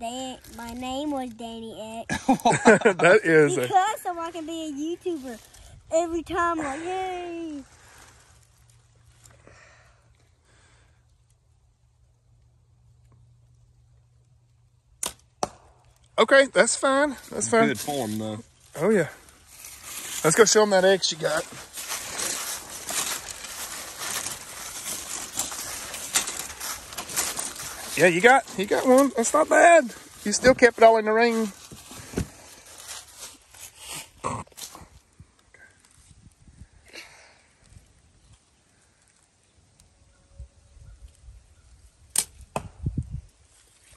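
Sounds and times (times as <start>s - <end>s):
arrow striking target: 15.0s - 15.8s, 42.1s - 42.9s.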